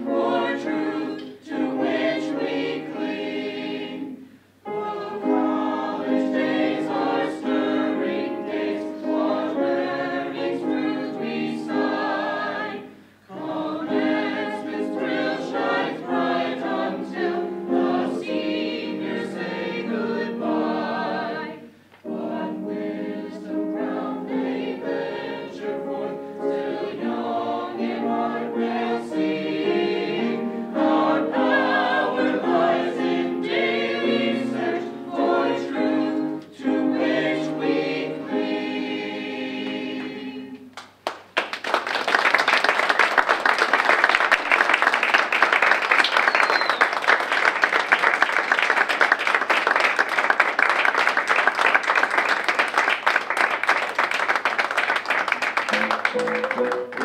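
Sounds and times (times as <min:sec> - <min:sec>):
mixed choir singing: 0:00.0 - 0:40.7
audience applause: 0:41.0 - 0:57.0.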